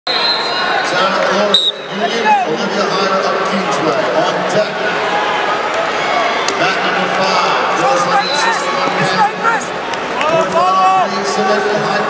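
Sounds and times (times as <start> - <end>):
referee's whistle: 0.1 - 0.7, 1.5 - 2.4, 8.1 - 8.6
crowd chatter and shouting: 0.1 - 12.0.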